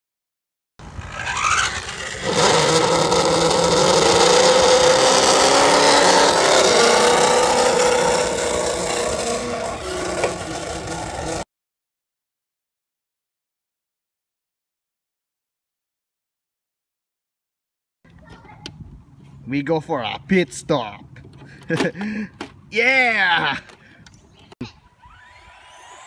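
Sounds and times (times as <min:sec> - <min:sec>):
rc car motor whine: 0:00.8 - 0:11.4, 0:25.0 - 0:26.0.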